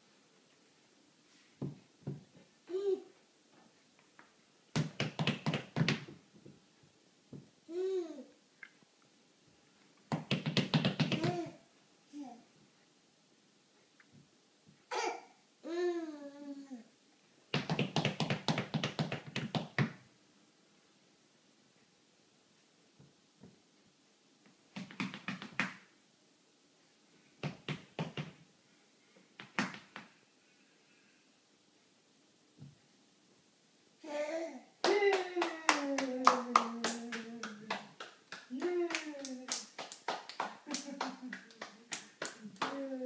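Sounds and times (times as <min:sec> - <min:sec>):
hands clapping: 0:04.2 - 0:06.2, 0:10.1 - 0:11.4, 0:17.5 - 0:20.0, 0:24.7 - 0:25.9, 0:27.4 - 0:28.4, 0:29.4 - 0:30.2, 0:34.8 - 0:43.0
rapid sharp taps: 0:04.7 - 0:06.2, 0:10.1 - 0:11.4, 0:17.5 - 0:20.0, 0:24.7 - 0:25.8, 0:27.4 - 0:28.4
person singing: 0:34.8 - 0:37.9.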